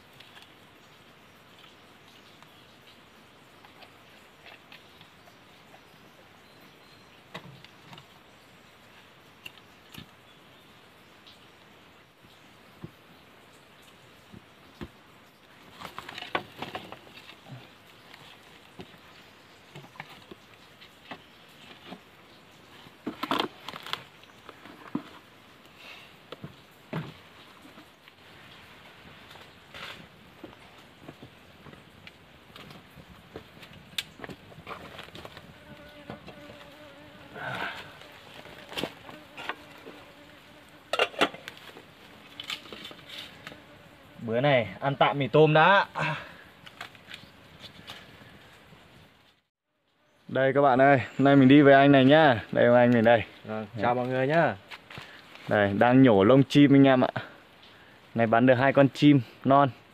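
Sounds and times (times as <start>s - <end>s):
insect buzzing: 34.2s - 44.7s.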